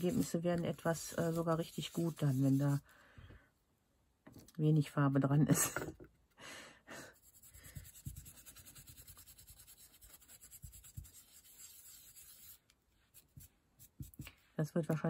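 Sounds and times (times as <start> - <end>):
dry paintbrush strokes: 0.0 - 2.9, 7.1 - 14.5.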